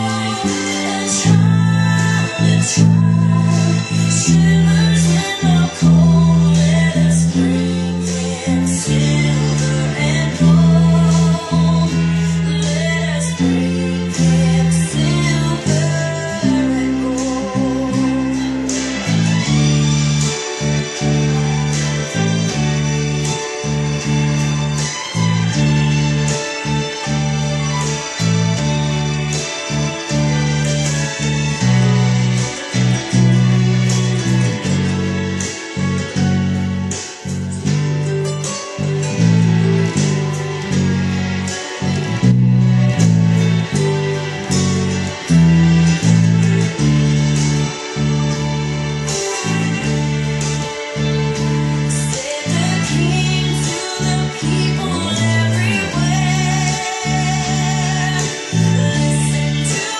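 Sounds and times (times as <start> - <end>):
band backing track with guitar: 0.0 - 59.9
electric bass plucked: 0.0 - 59.9.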